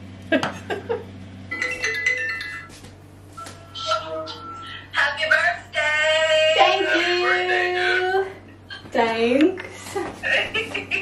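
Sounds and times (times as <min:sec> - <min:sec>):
phone ringtone chiming: 0:01.5 - 0:02.8, 0:03.4 - 0:05.0
voices singing through phone speaker: 0:03.4 - 0:09.0.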